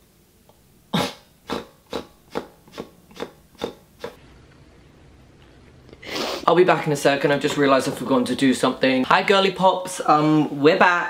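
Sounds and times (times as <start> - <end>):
person mock sobbing: 1.0 - 4.2.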